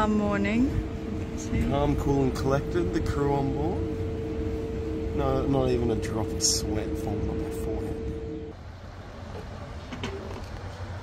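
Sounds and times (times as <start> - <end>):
held musical tone: 0.0 - 8.5
low engine rumble: 0.0 - 11.0.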